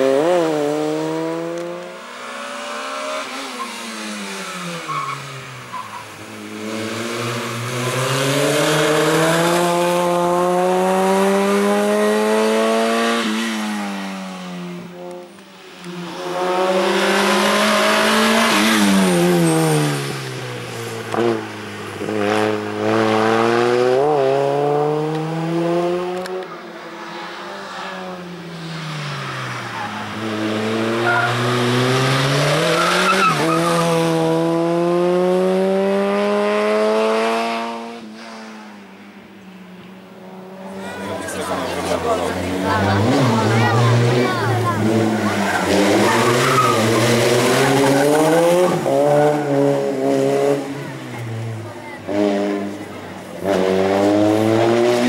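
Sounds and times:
car engine revving: 0.0 - 38.4, 40.4 - 55.0
tyres squealing: 43.0 - 49.0.

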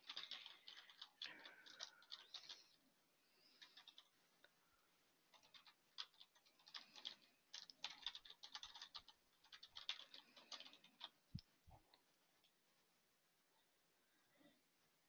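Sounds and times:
typing on keyboard: 0.0 - 2.8, 3.5 - 4.1, 5.3 - 11.2.

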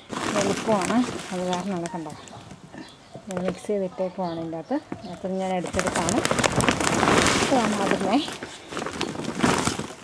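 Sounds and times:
plastic tarpaulin rustling: 0.0 - 2.7, 4.6 - 10.0
gritty scraping of soil: 0.0 - 3.9, 4.9 - 10.0.

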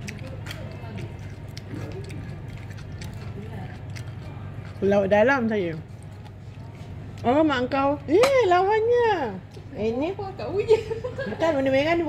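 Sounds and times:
faint background voices: 0.0 - 8.4
low room hum: 0.0 - 12.0.

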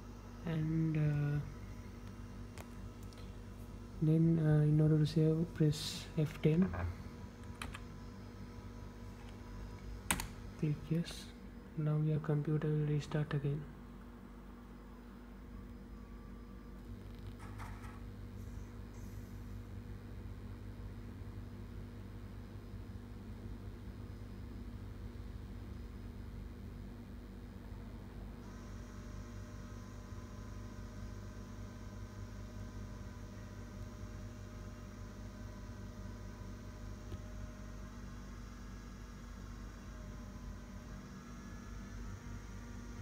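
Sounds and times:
high-pitched whine: 0.0 - 13.7, 28.4 - 43.0
computer electrical hum: 0.0 - 43.0.

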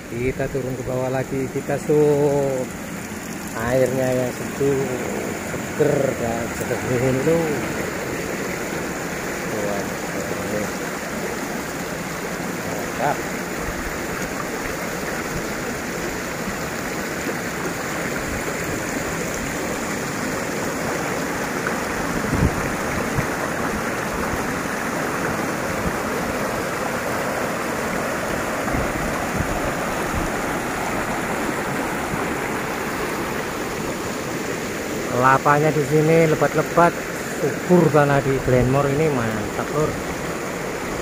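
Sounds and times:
river water rushing over stones: 0.0 - 41.0.

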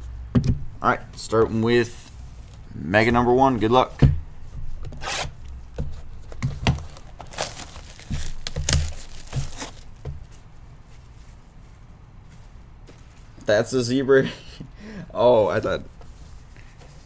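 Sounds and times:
plastic shrink-wrap tearing: 6.6 - 9.9.

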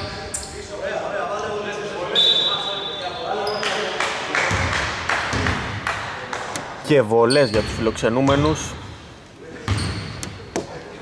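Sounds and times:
players' voices echoing: 0.0 - 11.0
referee's whistle: 2.1 - 3.3.

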